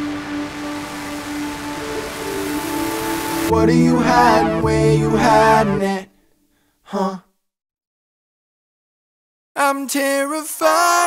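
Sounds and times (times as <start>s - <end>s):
music: 0.0s - 6.0s
person gasping: 6.5s - 7.3s.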